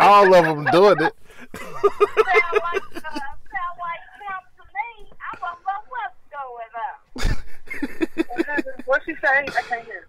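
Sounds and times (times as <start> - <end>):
woman talking: 2.1 - 7.1, 8.3 - 10.0.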